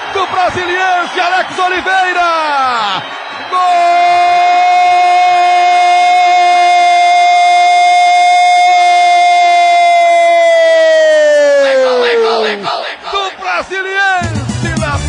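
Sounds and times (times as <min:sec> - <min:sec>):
announcer's long goal cry: 0:02.4 - 0:12.7
radio goal jingle: 0:11.2 - 0:15.0.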